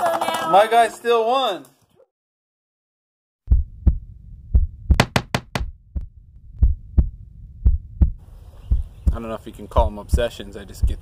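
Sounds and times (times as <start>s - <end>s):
heartbeat thumps: 3.5s - 11.0s.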